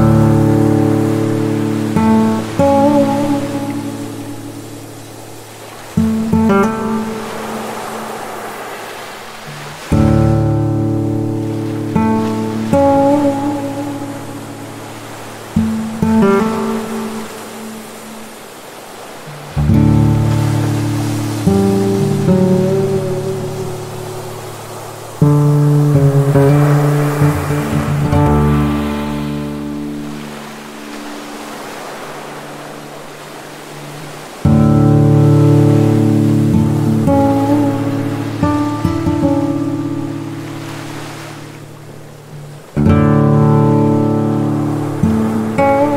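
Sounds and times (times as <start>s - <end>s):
acoustic guitar chords: 0.0s - 8.2s, 9.5s - 18.3s, 19.3s - 32.9s, 33.8s - 45.9s
surf on a beach: 0.0s - 45.9s.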